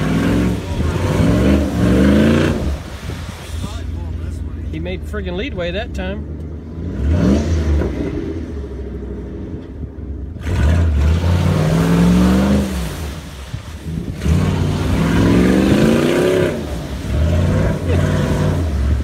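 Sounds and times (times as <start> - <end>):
suv engine revving hard: 0.0 - 3.2, 6.6 - 9.2, 10.3 - 19.0.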